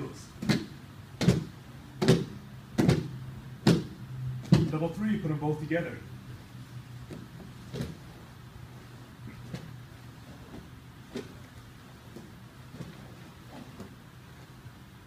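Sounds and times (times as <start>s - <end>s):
steady low hum: 0.0s - 15.0s
thumps on foam mats: 0.4s - 4.8s.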